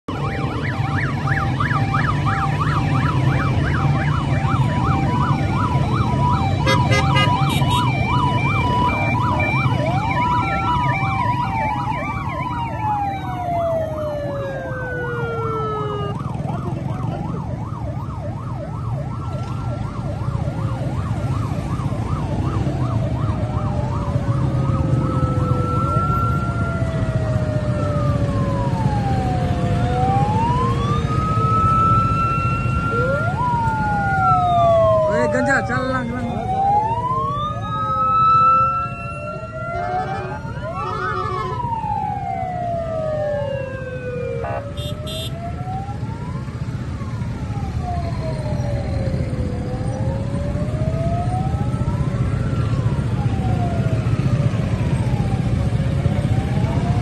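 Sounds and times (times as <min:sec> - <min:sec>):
emergency sirens wailing and yelping: 0:00.0 - 0:57.0
motorcycle and vehicle engines: 0:00.0 - 0:57.0.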